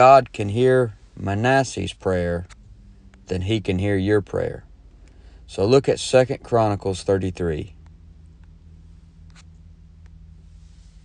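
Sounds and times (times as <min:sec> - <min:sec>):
low electrical hum: 0:00.0 - 0:11.0
faint hiss: 0:09.9 - 0:11.0.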